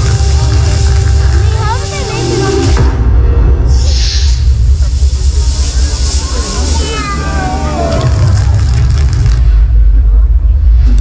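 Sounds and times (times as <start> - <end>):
deep bass rumble over loudspeakers: 0.0 - 11.0
high hiss: 3.7 - 8.0.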